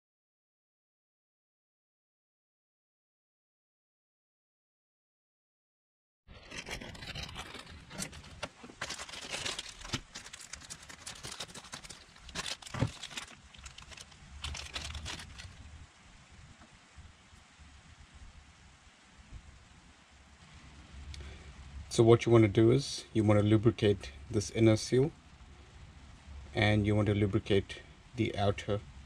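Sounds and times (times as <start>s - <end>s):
plastic bag crinkling: 6.3s - 15.7s.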